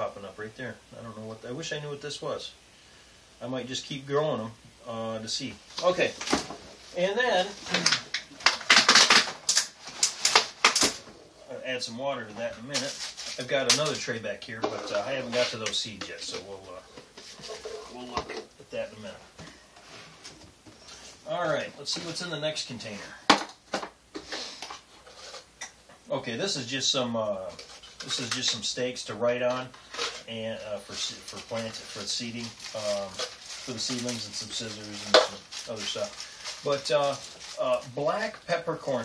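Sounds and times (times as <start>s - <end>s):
can rustling: 5.8s - 11.3s, 12.4s - 18.9s, 22.8s - 25.6s, 27.4s - 39.0s
sharp knocks and scrapes: 16.8s - 18.5s.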